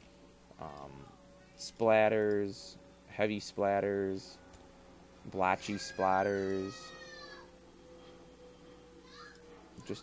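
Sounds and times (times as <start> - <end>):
steady low hum: 0.0 - 10.0
faint high-pitched cry: 5.7 - 7.5.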